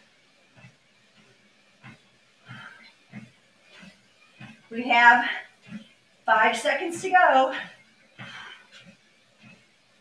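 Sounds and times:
footfalls on treadmill belt: 0.0 - 10.0
faint breath: 2.4 - 3.3, 7.5 - 9.6.

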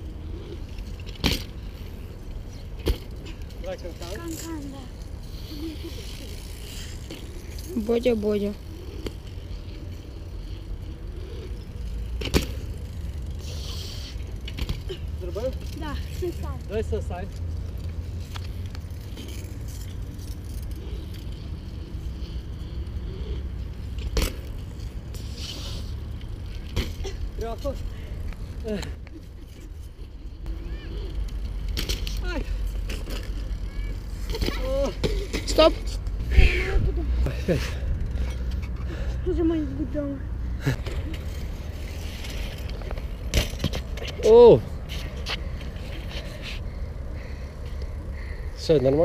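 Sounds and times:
bikes rolling over concrete: 0.0 - 49.0
children calling out: 30.5 - 31.2, 33.4 - 35.0.

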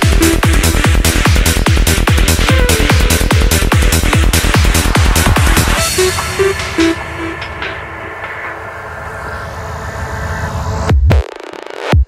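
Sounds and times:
electronic kick drum beat: 0.0 - 8.6
synth drone: 0.0 - 11.1.

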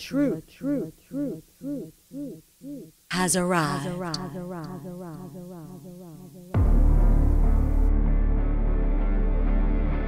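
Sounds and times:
man's voice with echo effect: 3.1 - 5.8.

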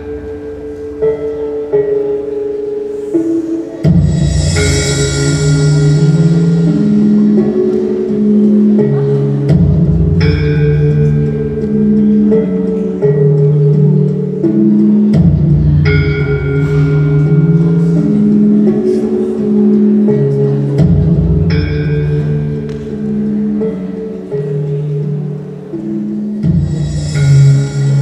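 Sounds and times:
gamelan music: 0.0 - 28.0
high bell-like ringing: 3.9 - 7.4, 26.6 - 28.0.

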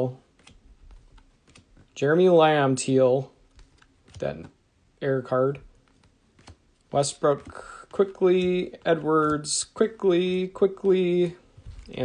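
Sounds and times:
trading cards clicking: 0.3 - 2.0, 5.8 - 9.8.

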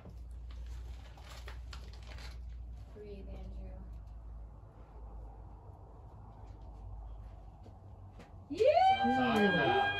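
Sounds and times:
howl-like vocal call: 8.6 - 9.9.

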